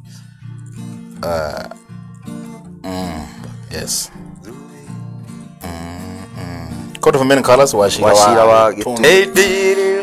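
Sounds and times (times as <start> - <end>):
acoustic guitar picked softly: 0.0 - 10.0
man making wordless vocal sounds: 1.2 - 1.9, 2.6 - 10.0.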